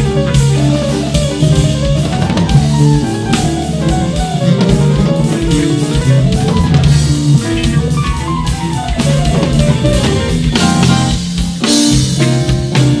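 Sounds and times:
electric bass line: 0:00.0 - 0:13.0
jazz-funk band music: 0:00.0 - 0:13.0.

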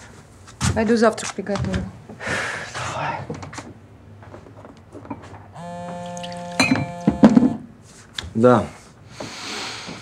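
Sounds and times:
mobile phone ringtone: 0:05.6 - 0:07.6.

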